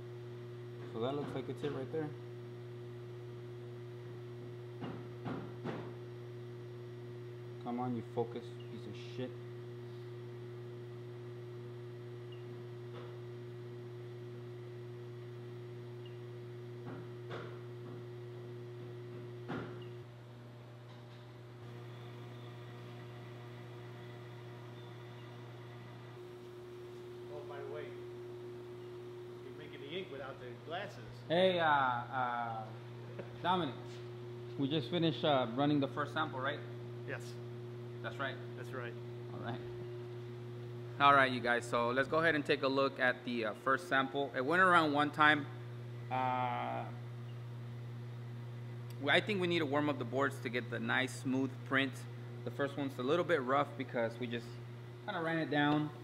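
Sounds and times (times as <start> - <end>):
low electrical hum: 0.0 - 56.0.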